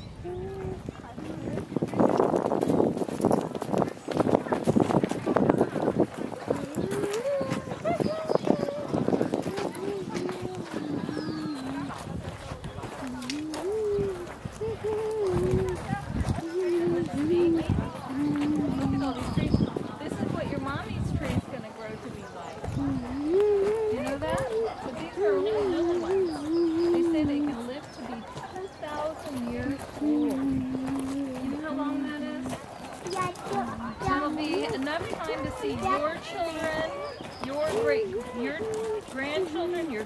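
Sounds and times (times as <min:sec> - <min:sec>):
footsteps on wood-chip path: 0:00.0 - 0:40.0
person humming a wordless tune: 0:13.0 - 0:15.8, 0:22.8 - 0:24.5, 0:29.9 - 0:32.0.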